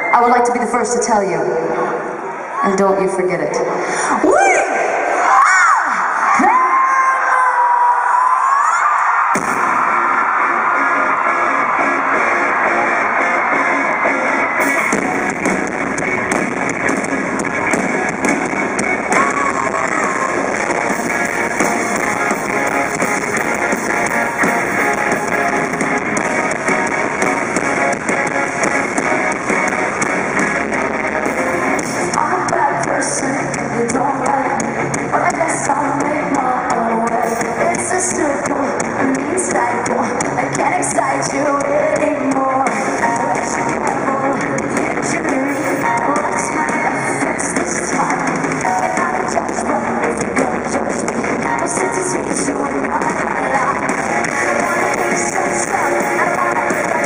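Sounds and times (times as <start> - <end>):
live rock band playing: 9.4 - 57.0.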